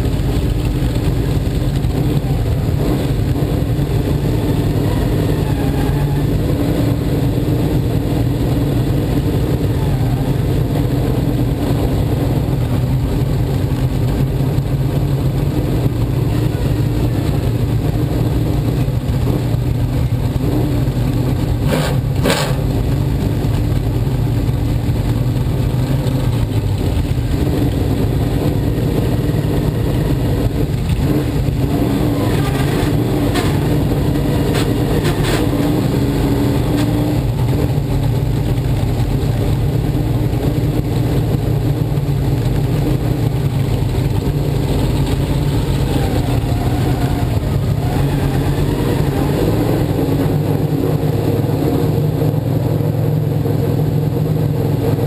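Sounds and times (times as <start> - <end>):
race car engine running: 0.0 - 55.0.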